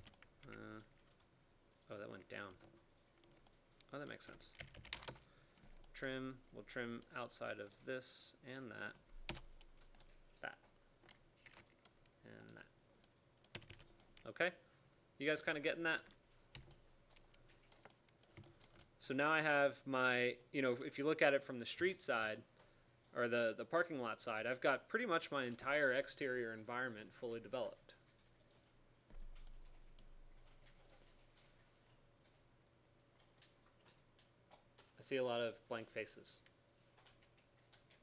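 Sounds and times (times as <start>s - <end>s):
computer keyboard clicks: 2.4s - 6.0s, 9.3s - 10.2s, 11.0s - 14.3s, 16.0s - 18.9s, 29.1s - 31.2s.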